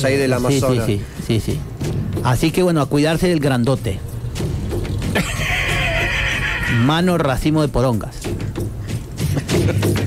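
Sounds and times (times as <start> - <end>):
horse whinnying: 5.1 - 7.0.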